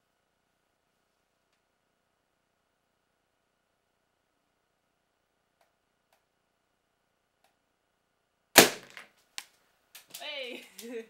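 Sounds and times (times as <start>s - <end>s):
balloon bursting: 8.6s - 9.0s.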